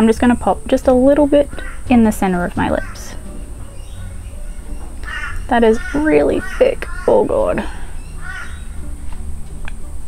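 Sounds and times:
harsh bird call: 0:02.6 - 0:08.8.

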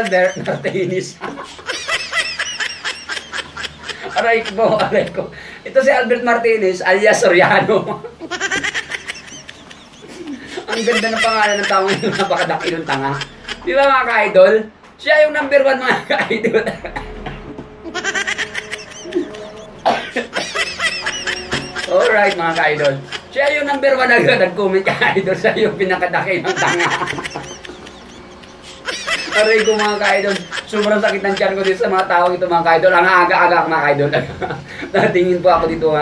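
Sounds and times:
man laughing hard: 0:00.0 - 0:05.3, 0:08.1 - 0:14.0, 0:15.8 - 0:32.4.

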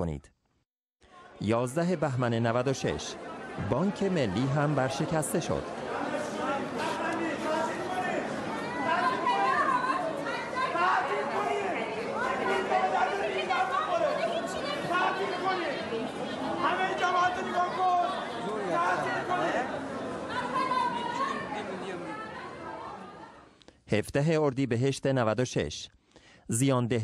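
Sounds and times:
crowd talking: 0:01.1 - 0:23.6.

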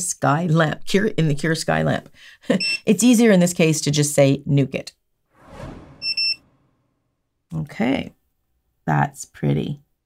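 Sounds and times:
whoosh sound effect: 0:05.4 - 0:07.0.

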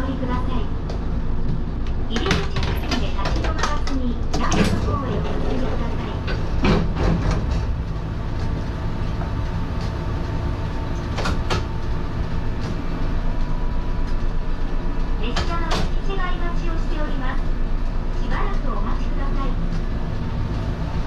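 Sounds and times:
railcar equipment humming: 0:00.0 - 0:21.0.

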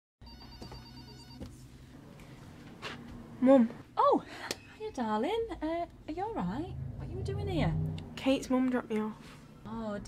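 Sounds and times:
electronic telephone ringing: 0:00.2 - 0:01.4.

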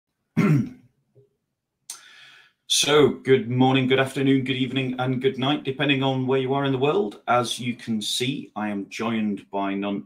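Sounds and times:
man clearing throat: 0:00.4 - 0:00.8
short breath: 0:01.9 - 0:02.7.

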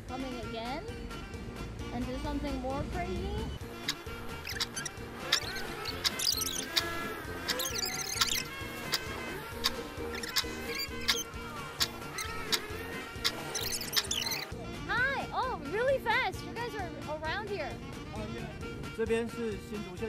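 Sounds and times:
playful music with steady beat: 0:00.0 - 0:20.0
squeaky chirps: 0:03.6 - 0:14.6.

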